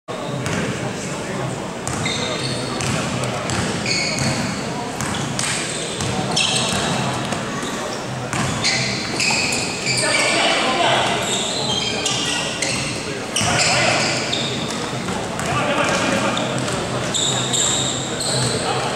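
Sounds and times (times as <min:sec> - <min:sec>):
players and spectators talking: 0:00.1 - 0:18.9
sneaker squeaks: 0:00.2 - 0:00.8, 0:01.8 - 0:18.9
basketball bouncing on court: 0:00.4 - 0:00.8, 0:01.8 - 0:07.4, 0:08.3 - 0:10.4, 0:12.0 - 0:18.6.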